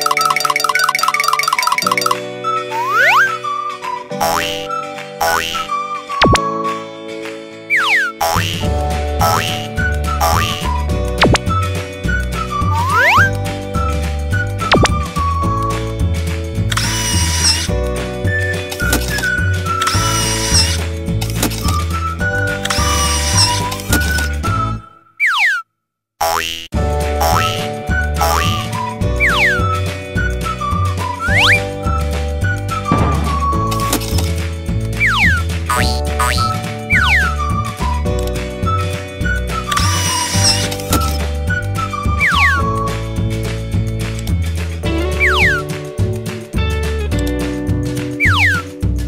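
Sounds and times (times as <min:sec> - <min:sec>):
children's music with held chords: 0:00.0 - 0:25.4, 0:26.2 - 0:49.0
cartoon falling swoop: 0:02.7 - 0:03.4, 0:07.7 - 0:08.6, 0:12.7 - 0:13.3, 0:48.2 - 0:48.7.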